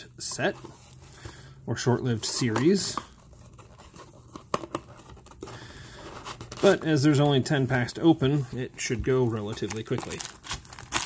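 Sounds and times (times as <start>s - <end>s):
rustling of card stock: 1.9s - 11.0s.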